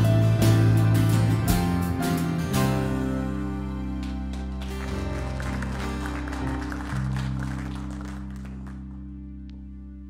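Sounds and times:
congregation applause: 3.8 - 9.2.

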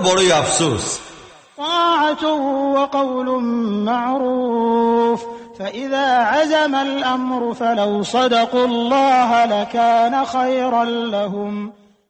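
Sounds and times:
man chanting: 0.0 - 11.8.

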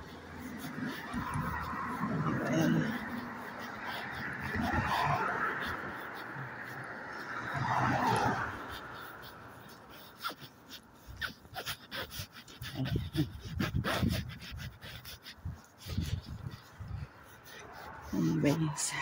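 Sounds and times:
car passing: 0.0 - 11.1
footsteps on pavement: 0.0 - 18.2
close breathing: 0.0 - 19.0.

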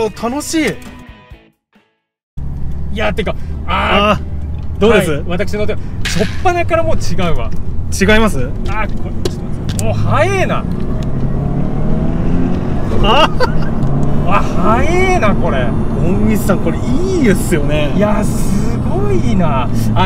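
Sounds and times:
car engine running: 2.4 - 20.0
people exclaiming and laughing: 12.9 - 15.0.

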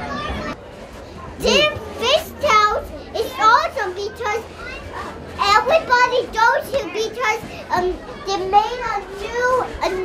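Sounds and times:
young boy talking: 0.0 - 0.6, 1.4 - 10.0.

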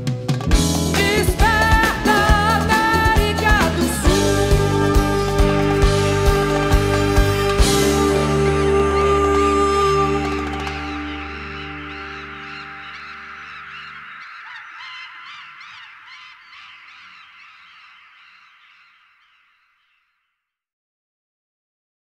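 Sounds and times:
band chord: 0.5 - 13.6
audience cheering and screaming: 10.1 - 17.2.

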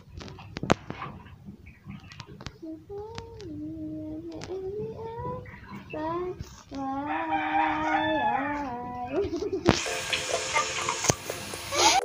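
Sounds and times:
hiss and crackle: 0.0 - 7.1, 7.8 - 12.0
rooster crowing: 6.8 - 9.1.

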